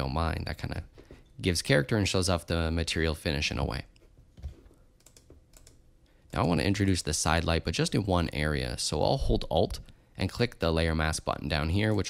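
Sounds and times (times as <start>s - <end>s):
computer keyboard and mouse clicks: 4.4s - 5.8s.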